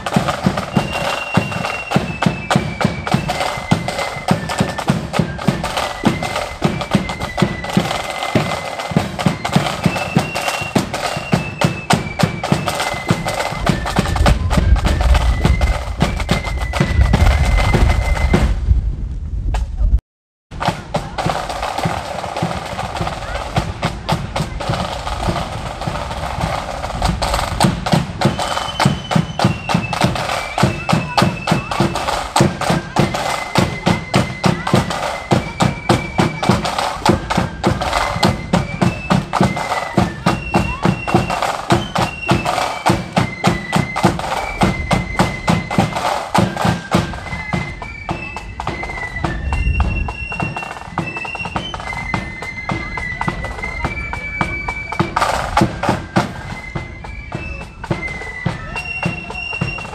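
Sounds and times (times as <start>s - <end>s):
shrill flute melody: 0.0s - 18.7s, 20.6s - 59.9s
snare and bass drum beats: 0.0s - 18.8s, 19.5s - 59.9s.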